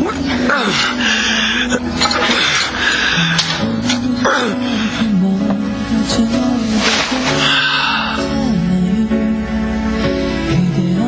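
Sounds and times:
sad background music: 0.0 - 11.0.

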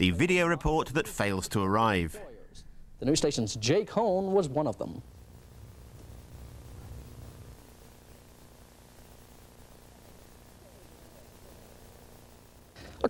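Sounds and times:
electrical hum with hiss: 0.0 - 13.0.

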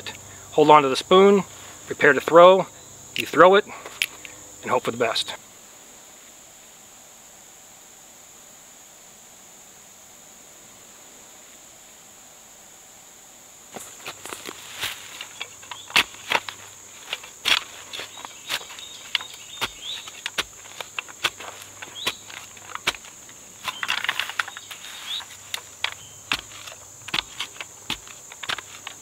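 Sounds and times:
high insect buzz: 0.0 - 29.0
shovel chopping into grassy soil: 13.8 - 29.0.

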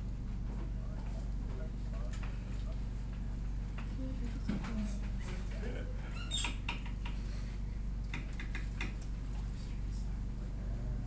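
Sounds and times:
steady low hum: 0.0 - 11.0
high squeaks and clicks: 6.2 - 7.0.

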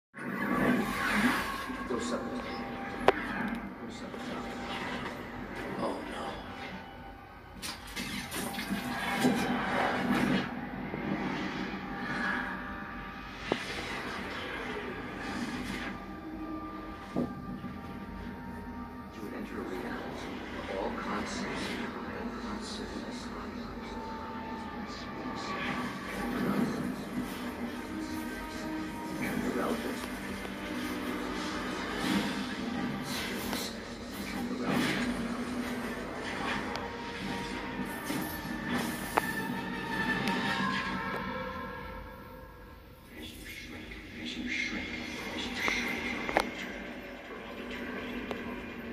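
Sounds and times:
faint musical score: 0.1 - 48.9.

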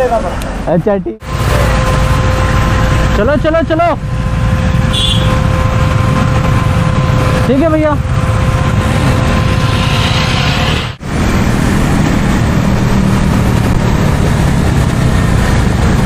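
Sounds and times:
motorcycle engine running: 1.4 - 10.6.

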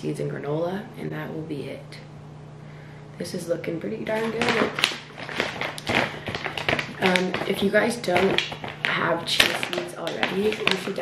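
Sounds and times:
plastic pouch crinkling: 4.0 - 11.0.

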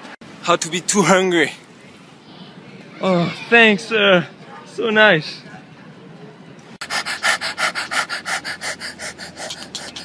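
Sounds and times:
dog panting rapidly: 6.8 - 10.0.

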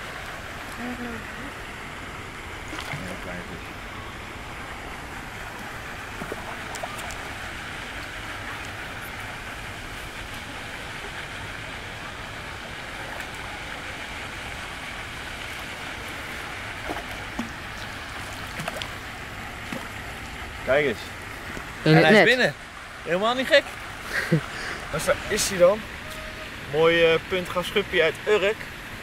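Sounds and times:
fish splashing in water: 0.0 - 20.7.

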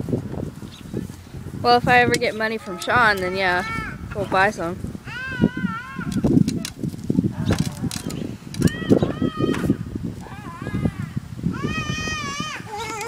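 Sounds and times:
wind rumbling on microphone: 0.0 - 13.0
toddler squealing and babbling: 3.2 - 4.1, 5.0 - 6.3, 8.6 - 13.0.

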